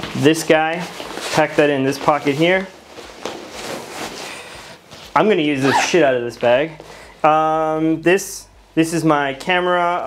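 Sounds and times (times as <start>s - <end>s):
fabric backpack rustling: 0.7s - 6.0s.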